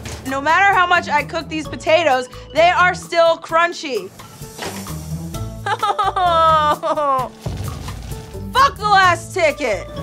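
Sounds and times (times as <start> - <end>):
background music with bass line: 4.1 - 10.0
woman laughing: 5.6 - 7.4.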